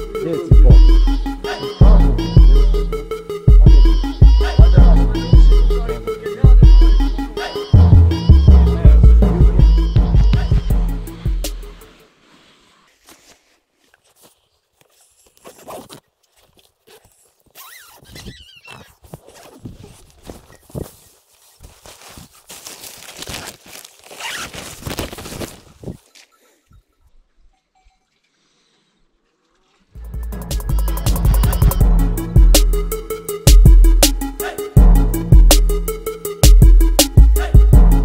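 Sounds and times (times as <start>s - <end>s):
nylon fabric rustling: 12.0s - 26.3s
tent zipper pulled open: 12.4s - 21.0s, 21.6s - 26.0s.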